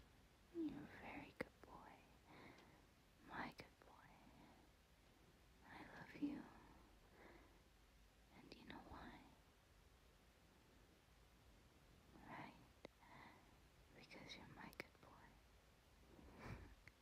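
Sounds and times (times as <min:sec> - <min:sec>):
woman whispering: 0:00.5 - 0:02.2, 0:03.2 - 0:04.6, 0:05.6 - 0:06.9, 0:08.3 - 0:09.4, 0:12.1 - 0:15.4.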